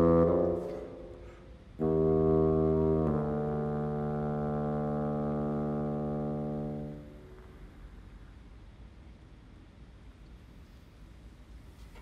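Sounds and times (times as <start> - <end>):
solo bassoon notes: 0.0 - 7.7.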